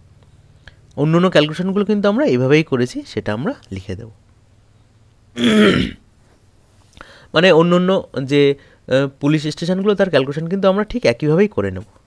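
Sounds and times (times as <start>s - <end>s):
man clearing his throat: 5.4s - 6.0s.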